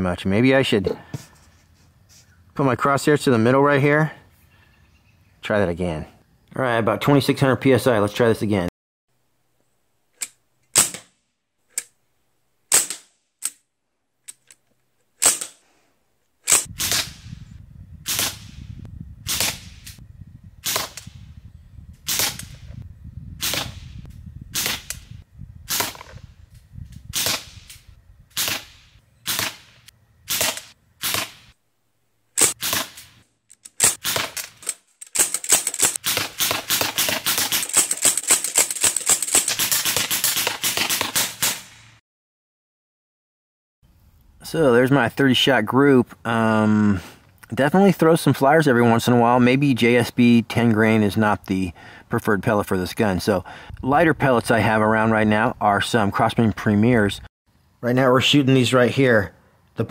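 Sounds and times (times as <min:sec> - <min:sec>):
air rifle shots: 0:10.7 - 0:11.2, 0:12.7 - 0:13.6, 0:15.2 - 0:15.6, 0:16.4 - 0:17.3, 0:18.0 - 0:18.7, 0:19.3 - 0:20.0, 0:20.6 - 0:21.2, 0:22.1 - 0:22.7, 0:23.4 - 0:25.1, 0:25.7 - 0:26.3, 0:27.1 - 0:31.6, 0:32.4 - 0:33.2, 0:33.8 - 0:42.0.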